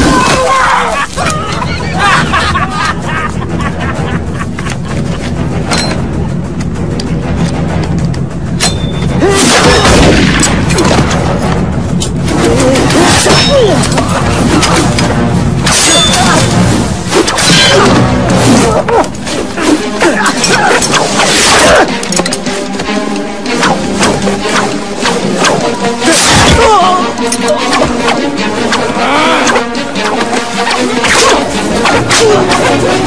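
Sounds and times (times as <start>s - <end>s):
action film music with low pulse: 0.0s - 33.0s.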